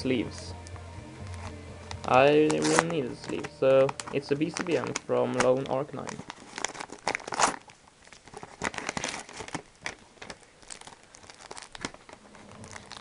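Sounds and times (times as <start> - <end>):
cardboard and plastic crinkling: 1.3 - 13.0.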